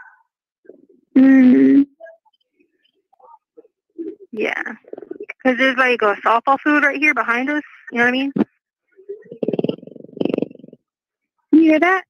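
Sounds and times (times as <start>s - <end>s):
pet snoring over phone: 9.1s - 10.9s.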